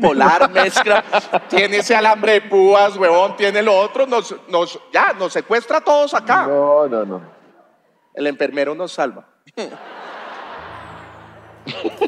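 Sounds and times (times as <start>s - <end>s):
studio audience laughter: 0.0s - 2.0s, 9.6s - 12.0s.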